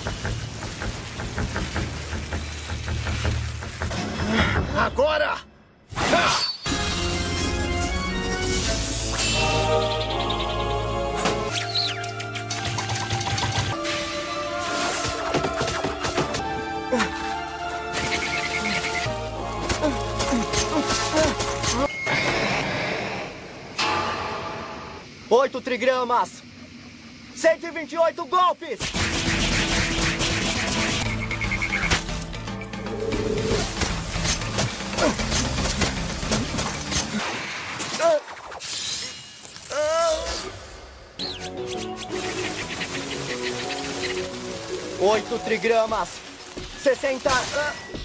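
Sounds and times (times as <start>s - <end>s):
dramatic background music: 6.6s - 25.1s, 28.8s - 37.8s, 40.6s - 48.0s
sharp hit sound effects: 21.9s - 25.2s.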